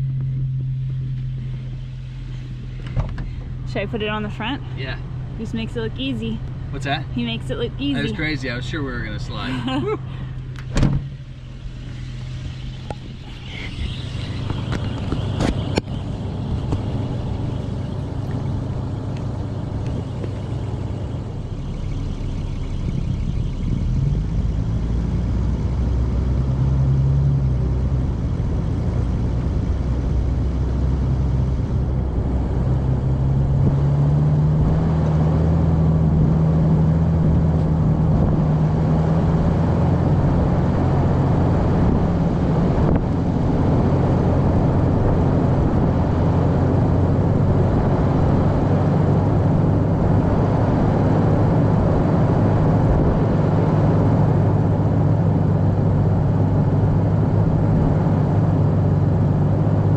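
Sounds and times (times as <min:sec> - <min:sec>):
engine pulling away: 0:00.0 - 0:59.9.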